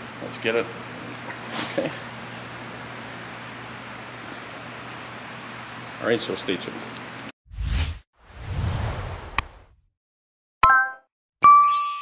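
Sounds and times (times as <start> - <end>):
bell ding: 10.7 - 12.0.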